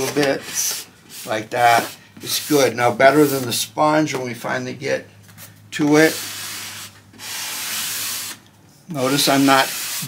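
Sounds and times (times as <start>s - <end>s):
sanding sponge rubbing wood: 0.4s - 3.6s, 6.0s - 8.4s, 9.0s - 10.0s.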